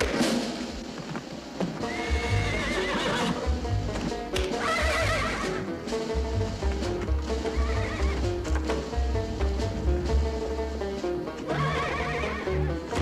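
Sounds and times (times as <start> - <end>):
horse neighing: 1.8 - 3.5, 4.6 - 5.6, 7.5 - 8.3, 11.5 - 12.8
pulsing low bass: 3.5 - 4.2, 6.1 - 11.0.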